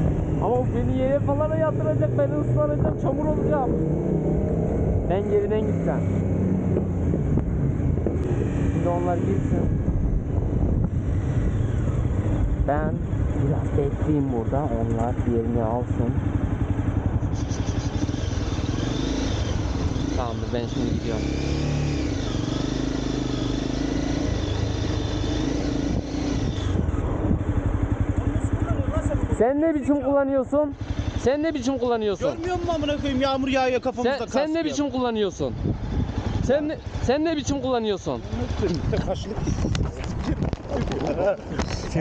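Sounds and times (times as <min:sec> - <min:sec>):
motorcycle engine running: 0:00.0 - 0:42.0
wind buffeting microphone: 0:06.4 - 0:13.7, 0:24.5 - 0:28.9, 0:35.4 - 0:37.0, 0:38.3 - 0:42.0.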